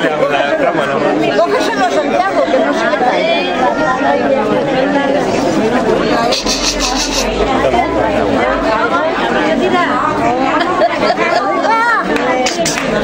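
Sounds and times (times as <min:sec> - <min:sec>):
overlapping chatter of people: 0:00.0 - 0:13.0.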